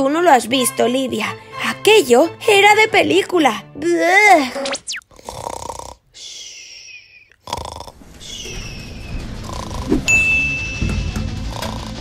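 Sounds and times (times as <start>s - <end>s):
cartoon snoring with whistle: 4.9s - 8.0s, 9.4s - 10.1s, 11.4s - 12.0s.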